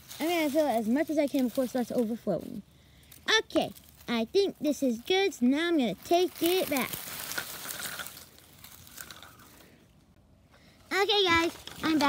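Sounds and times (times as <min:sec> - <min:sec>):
dry leaves rustling and crunching: 0:00.0 - 0:09.8, 0:11.0 - 0:12.0.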